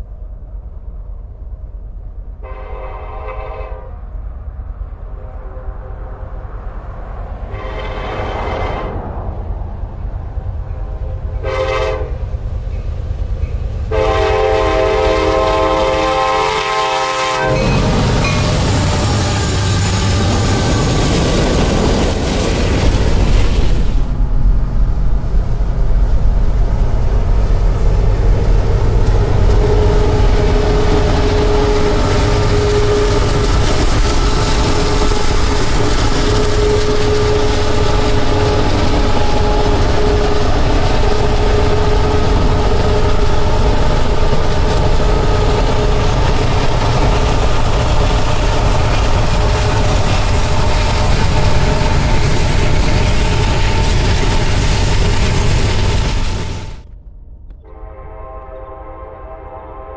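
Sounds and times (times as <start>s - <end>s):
freight train rumbling past: 0.0s - 59.9s.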